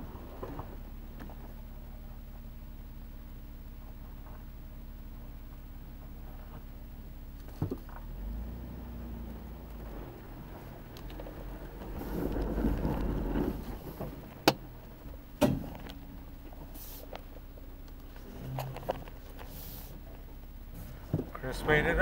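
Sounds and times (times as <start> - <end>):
engine running low and steady: 0.0 - 22.0.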